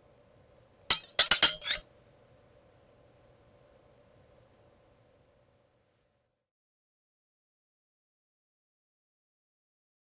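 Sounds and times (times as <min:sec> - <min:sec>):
sharp ringing clinks: 0:00.9 - 0:01.8.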